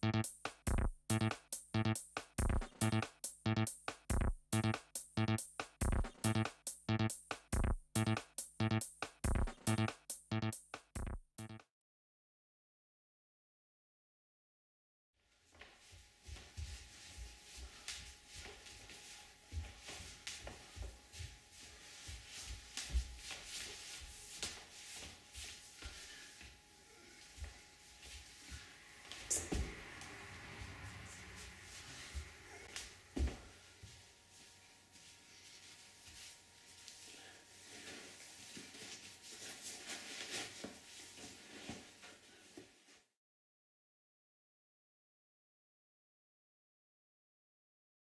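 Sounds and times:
footsteps on hard floor: 0:15.4 - 0:26.6, 0:27.2 - 0:37.0.

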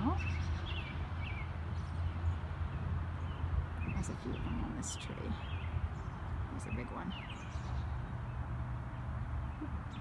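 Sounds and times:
birds chirping: 0:00.0 - 0:10.0.

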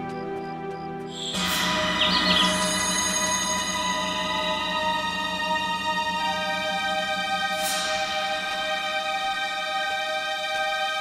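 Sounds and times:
tense drama music: 0:00.0 - 0:11.0.

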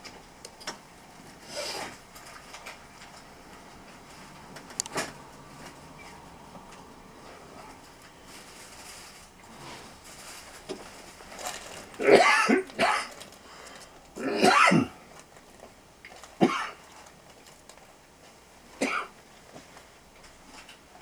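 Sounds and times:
person coughing: 0:12.0 - 0:13.2, 0:14.2 - 0:15.0, 0:16.4 - 0:16.8, 0:18.8 - 0:19.1.

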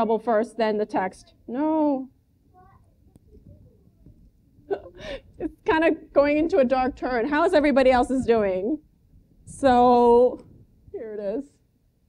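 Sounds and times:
woman speaking: 0:00.0 - 0:02.1, 0:05.4 - 0:08.8, 0:09.5 - 0:10.4, 0:11.0 - 0:11.5.

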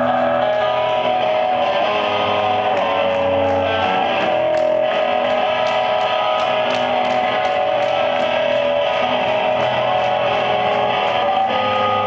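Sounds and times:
electric guitar held notes: 0:00.0 - 0:12.0
high ticking beat: 0:00.0 - 0:12.0
rock band playing: 0:00.0 - 0:12.0.

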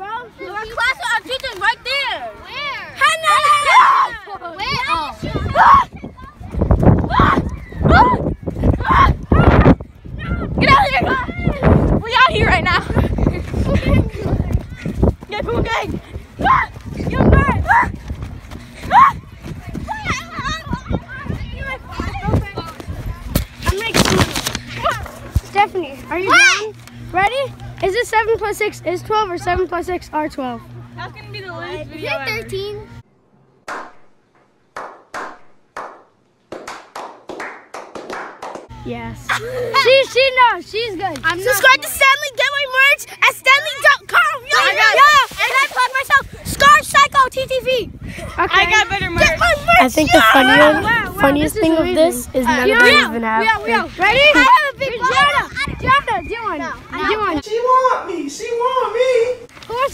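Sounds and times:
teenagers shrieking and laughing: 0:00.6 - 0:22.4, 0:39.2 - 0:40.9, 0:41.5 - 0:51.2, 0:52.5 - 0:57.4
thumping and rustling from running: 0:13.0 - 0:20.5, 0:21.3 - 0:25.6
hand claps: 0:34.8 - 0:38.7
applause: 0:36.6 - 0:38.7.

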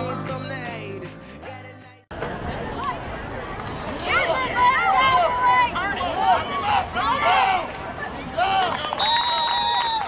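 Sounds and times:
people shouting and cheering: 0:03.9 - 0:10.0.

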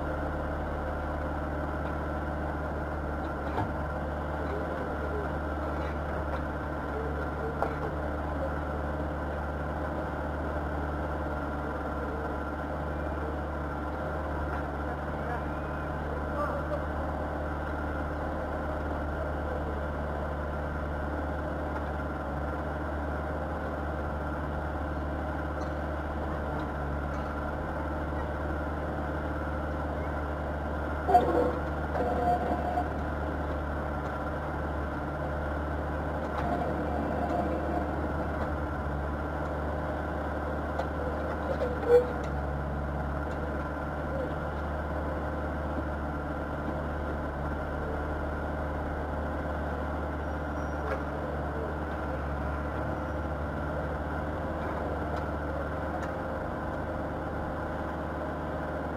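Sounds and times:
diesel engine droning: 0:00.0 - 0:58.9.

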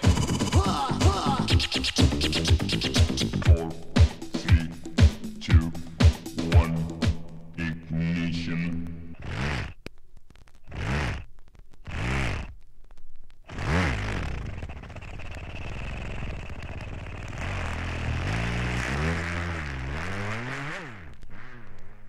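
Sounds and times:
record scratch sweeps: 0:00.0 - 0:07.3, 0:08.1 - 0:12.6.

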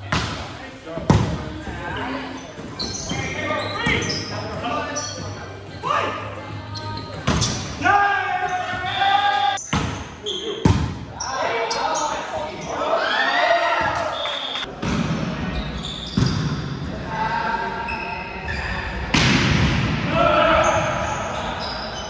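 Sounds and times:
players shouting calls: 0:20.0 - 0:22.0.

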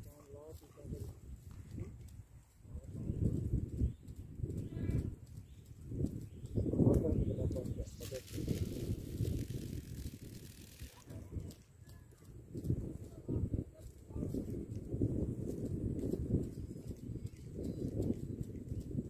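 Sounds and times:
fishing line hissing off spool: 0:08.2 - 0:11.0.

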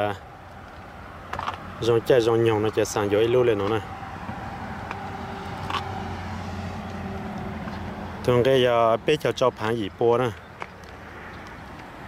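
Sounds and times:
car engine humming: 0:00.3 - 0:08.7.

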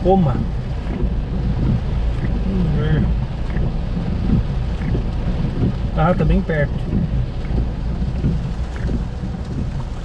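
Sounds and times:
constant low rumble: 0:00.0 - 0:10.0
rain on car roof: 0:00.0 - 0:10.0.

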